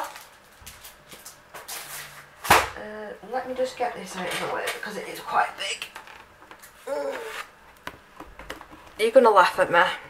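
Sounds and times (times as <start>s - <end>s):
woman murmuring mm: 6.8s - 7.4s.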